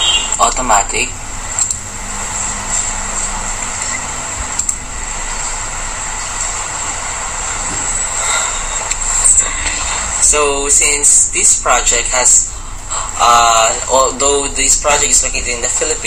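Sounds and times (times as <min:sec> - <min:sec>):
background hiss: 0:00.0 - 0:16.0.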